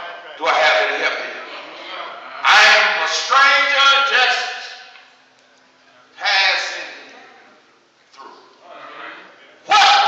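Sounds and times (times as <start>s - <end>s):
man preaching in half-sung shouts: 2.4s - 4.8s, 6.2s - 7.0s, 9.6s - 10.0s.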